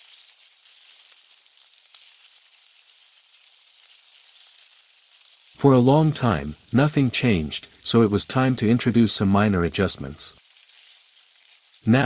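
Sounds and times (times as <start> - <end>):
faint steady hiss: 0.0 - 12.0
soft crackles and ticks: 0.0 - 12.0.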